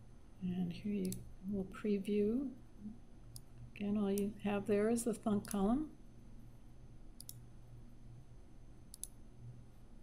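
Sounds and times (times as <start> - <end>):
faint low hum: 0.0 - 10.0
computer mouse clicks: 1.0 - 1.3, 3.3 - 4.3, 5.4 - 5.6, 7.2 - 7.4, 8.9 - 9.2.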